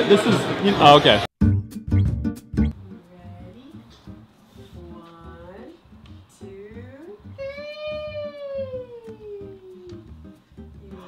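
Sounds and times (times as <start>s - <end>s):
quiet background music with beat: 1.4s - 11.0s.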